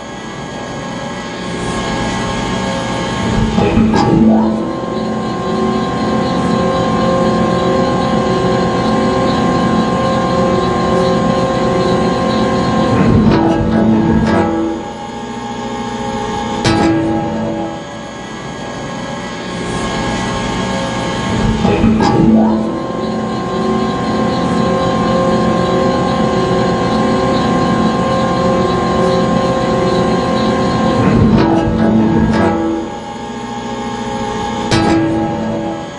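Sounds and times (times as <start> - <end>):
conveyor machinery whining: 0.0 - 35.9
machinery rumble: 0.0 - 35.9.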